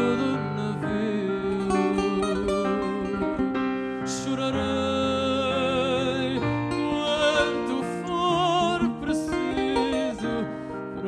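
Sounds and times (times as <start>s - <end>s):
man singing: 0.0s - 3.4s, 4.0s - 11.0s
piano accompaniment: 0.0s - 11.0s.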